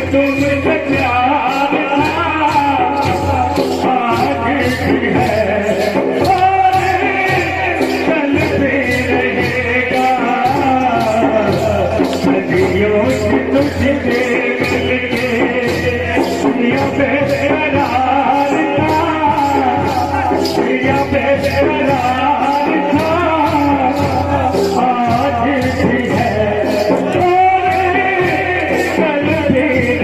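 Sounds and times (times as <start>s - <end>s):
men singing: 0.0s - 30.0s
sharp percussive strikes: 0.0s - 30.0s
steady drum beat: 0.0s - 30.0s.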